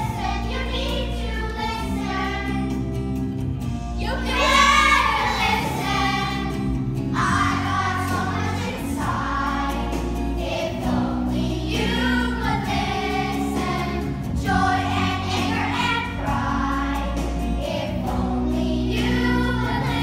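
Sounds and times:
children singing: 0:00.0 - 0:02.8, 0:04.0 - 0:20.0
instrumental music with bass notes: 0:00.0 - 0:20.0.

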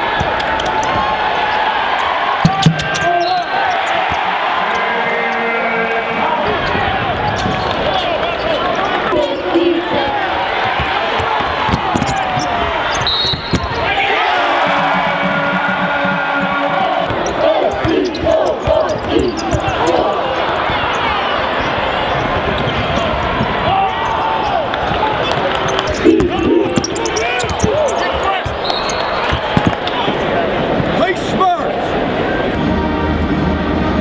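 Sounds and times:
crowd voices: 0:00.0 - 0:34.0
sneakers squeaking: 0:00.1 - 0:04.8, 0:06.6 - 0:14.0, 0:14.6 - 0:30.4.

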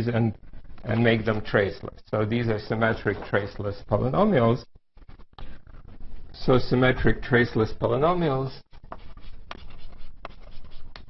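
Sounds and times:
chalk scratching on blackboard: 0:08.7 - 0:11.0
chalk tapping on board: 0:08.9 - 0:11.0.

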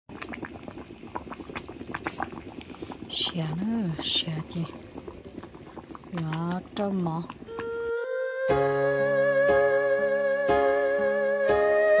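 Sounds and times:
soup bubbling at a boil: 0:00.1 - 0:11.9.

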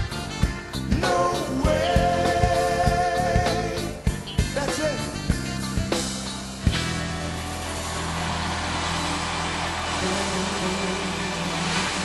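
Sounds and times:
crowd noise: 0:06.0 - 0:12.0
live band sustained chord: 0:06.7 - 0:12.0.

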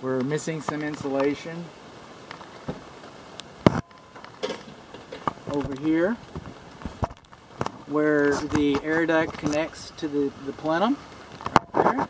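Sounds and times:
faint rustling: 0:00.0 - 0:12.0.

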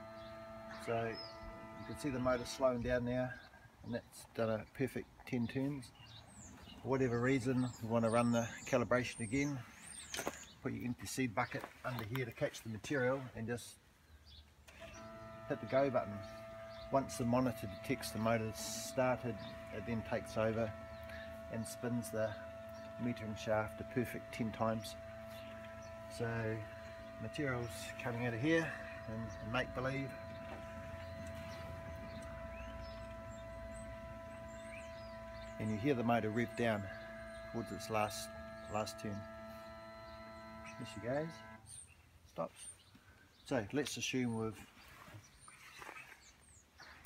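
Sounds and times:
electric motor humming: 0:00.0 - 0:03.4, 0:14.7 - 0:41.8.

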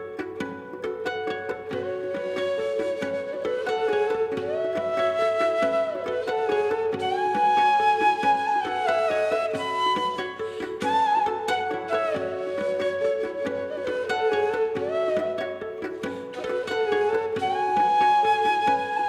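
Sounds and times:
flute playing slow melody: 0:00.0 - 0:00.6, 0:01.4 - 0:19.0
plucked string accompaniment: 0:00.0 - 0:19.0.

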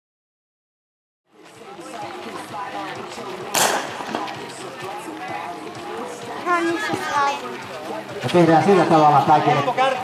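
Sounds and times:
voices of spectators: 0:01.3 - 0:10.0
starting pistol shot: 0:03.6 - 0:04.3.

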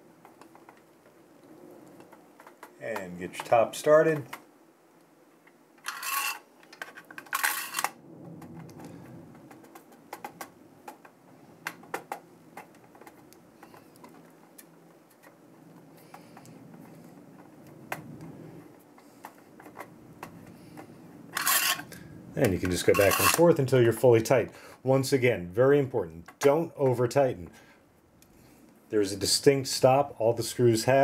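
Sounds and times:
short scraping rustles: 0:05.8 - 0:06.5, 0:21.3 - 0:21.9, 0:22.9 - 0:23.4
screwdriver clicking on metal screws: 0:23.0 - 0:23.4.

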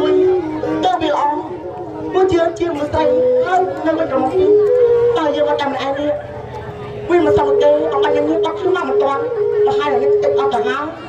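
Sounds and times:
instrumental ensemble melody: 0:00.0 - 0:10.8.

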